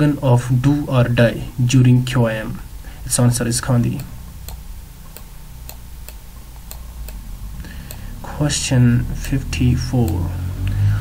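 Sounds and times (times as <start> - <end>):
steady low hum: 0.0 - 11.0
regular ticking: 0.9 - 11.0.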